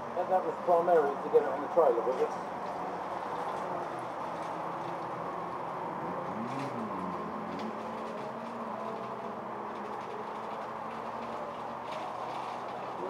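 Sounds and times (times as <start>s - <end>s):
vehicle engine hum: 0.0s - 13.0s.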